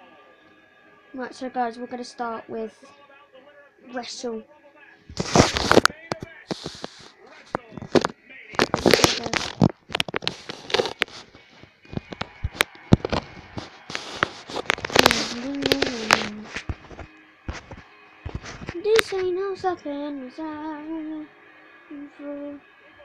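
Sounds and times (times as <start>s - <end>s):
person talking: 5.1s - 9.6s, 14.3s - 16.7s, 18.7s - 19.9s
crackling scrapes and knocks: 5.1s - 19.3s
microphone rubbing against bedding: 5.1s - 19.3s.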